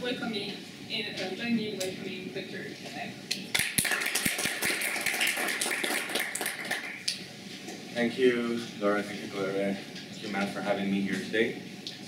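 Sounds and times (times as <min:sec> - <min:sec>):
audience applauding: 0:03.5 - 0:07.1.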